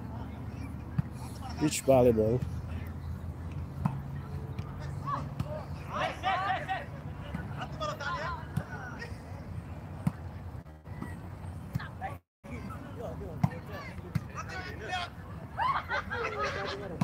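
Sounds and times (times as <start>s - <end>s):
distant players calling out: 4.4s - 9.3s.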